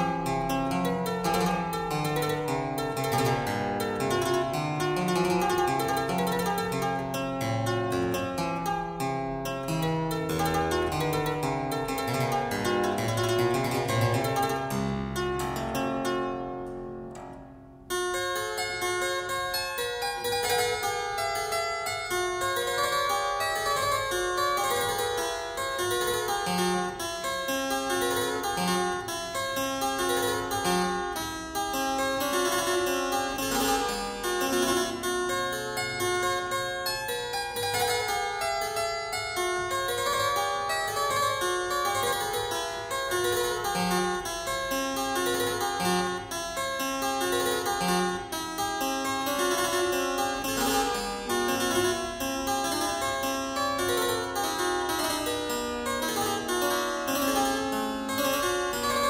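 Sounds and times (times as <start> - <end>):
harpsichord music: 0.0 - 59.0.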